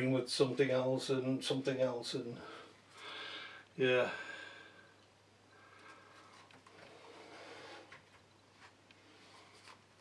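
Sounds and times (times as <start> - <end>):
soft plastic rustle: 5.8 - 10.0.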